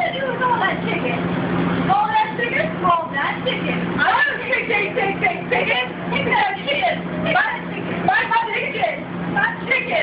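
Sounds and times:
indistinct voices talking: 0:00.0 - 0:10.0
low mechanical hum: 0:00.0 - 0:10.0.

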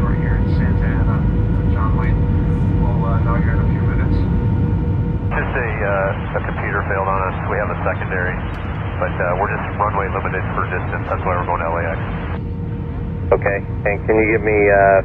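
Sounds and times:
radio voice: 0:00.0 - 0:02.2, 0:02.9 - 0:04.2, 0:05.3 - 0:12.4, 0:13.3 - 0:15.0
faint voices: 0:00.0 - 0:04.3, 0:05.3 - 0:12.4, 0:13.3 - 0:15.0
airliner cabin rumble: 0:00.0 - 0:15.0
faint steady hum: 0:00.0 - 0:15.0.

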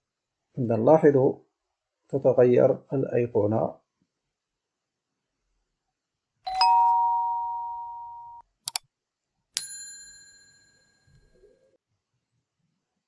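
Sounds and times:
bright bell ding: 0:06.5 - 0:08.4, 0:09.6 - 0:11.1.

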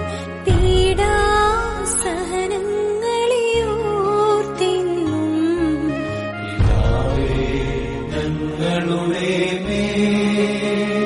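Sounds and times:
steady low drone: 0:06.6 - 0:10.5.

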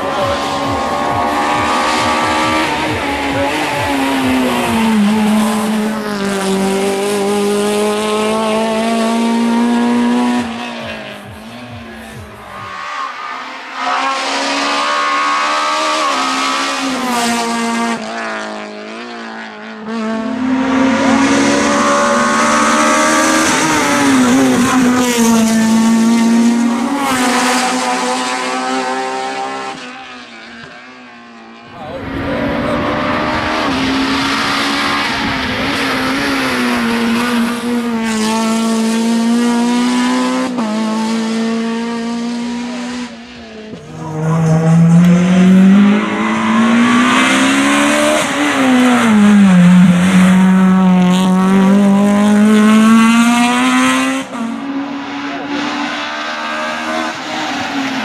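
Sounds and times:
race car engine revving: 0:00.0 - 0:58.0.

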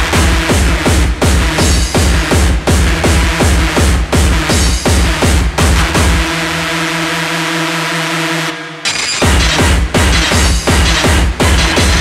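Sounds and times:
kick drum: 0:00.0 - 0:06.3, 0:09.2 - 0:12.0.

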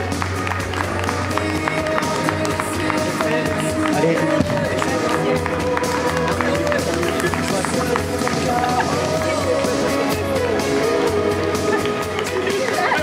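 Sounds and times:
bass guitar: 0:00.0 - 0:13.0
woman singing: 0:08.5 - 0:12.0.

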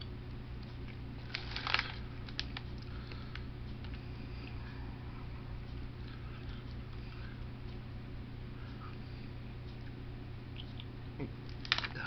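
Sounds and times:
steady low hum: 0:00.0 - 0:12.0
plastic snack bag crinkling: 0:01.2 - 0:04.0, 0:11.5 - 0:12.0.

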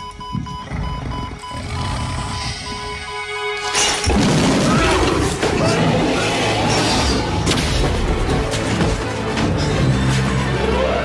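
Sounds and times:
high repeating beep: 0:00.0 - 0:03.7
tense film score music: 0:00.0 - 0:11.0.

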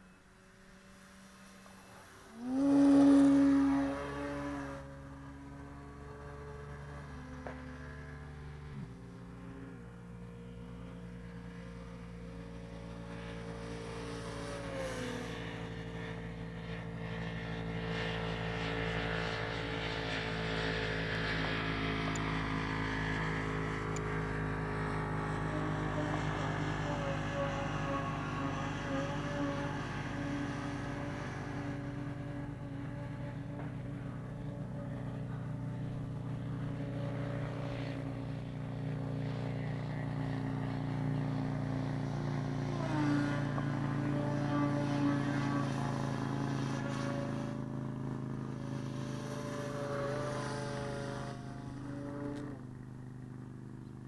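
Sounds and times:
model plane motor and propeller drone: 0:00.0 - 0:54.0.

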